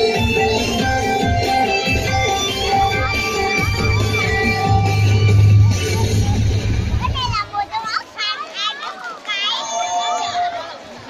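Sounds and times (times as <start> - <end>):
stage music: 0.0 - 7.6
children calling and shouting: 0.0 - 11.0.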